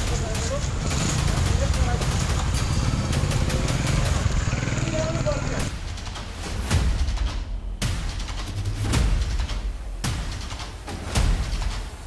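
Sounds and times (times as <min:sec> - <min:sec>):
indistinct voices: 0:00.0 - 0:05.7
vehicle engine rumble: 0:00.0 - 0:05.8.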